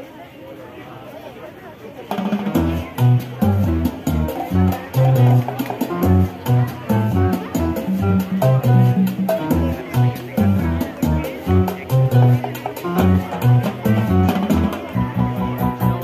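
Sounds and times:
latin backing track with percussion: 2.1 - 16.0.

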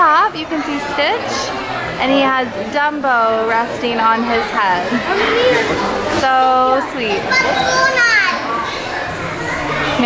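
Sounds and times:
crowd chatter: 0.0 - 10.0
children's voices: 3.3 - 10.0.

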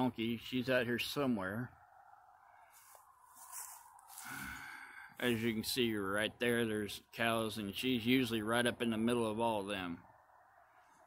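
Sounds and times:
man breathing close to microphone: 2.5 - 5.2.

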